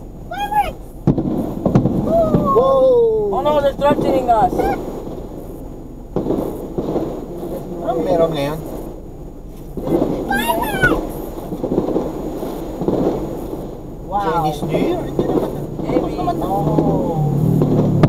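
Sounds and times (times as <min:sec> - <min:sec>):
car cabin road rumble: 0:00.0 - 0:18.0
voices talking: 0:00.2 - 0:01.0, 0:02.0 - 0:17.6.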